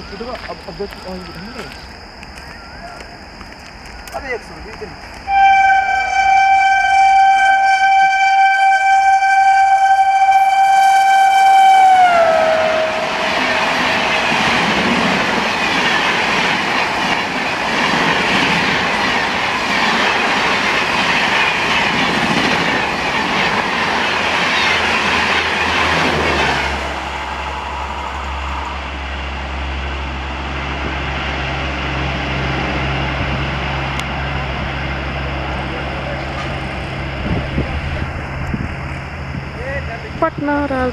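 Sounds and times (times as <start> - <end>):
locomotive horn: 5.3 - 14.7
train coaches rushing past: 10.8 - 40.9.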